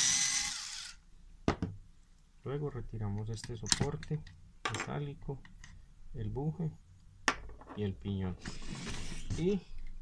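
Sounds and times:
cordless screwdriver motor whining: 0:00.0 - 0:01.0.

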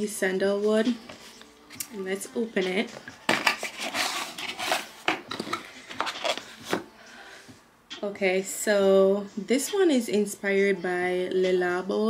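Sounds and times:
paper rustling: 0:03.3 - 0:06.8.

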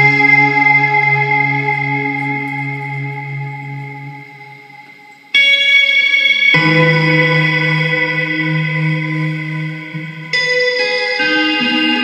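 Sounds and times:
guitar chords with echo: 0:00.0 - 0:12.0.

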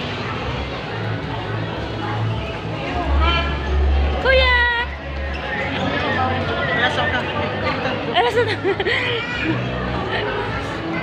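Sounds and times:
background music: 0:00.0 - 0:11.0
shoppers chatter: 0:00.0 - 0:11.0.

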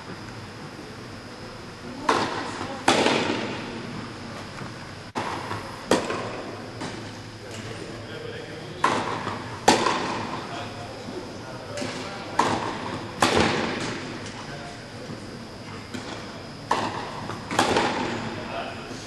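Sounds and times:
rackets striking tennis ball: 0:01.9 - 0:04.0, 0:04.6 - 0:07.8, 0:08.8 - 0:10.5, 0:11.7 - 0:14.5, 0:15.8 - 0:18.4.

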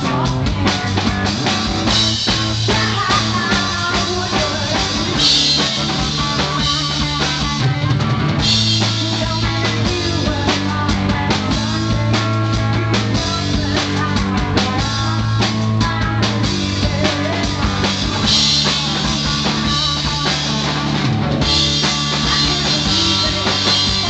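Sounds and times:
drum kit: 0:00.0 - 0:24.0
electric guitar: 0:00.0 - 0:24.0.

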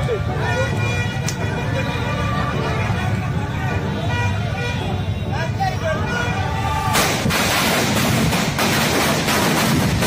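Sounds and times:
crowd voices: 0:00.0 - 0:08.4
firecrackers cracking: 0:06.9 - 0:10.0.

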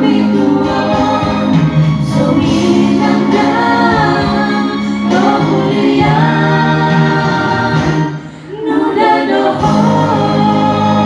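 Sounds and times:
karaoke backing track: 0:00.0 - 0:11.0.

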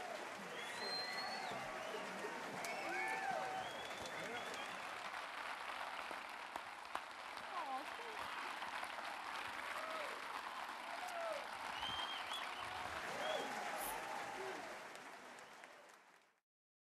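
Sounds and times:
audience clapping: 0:00.0 - 0:16.4.

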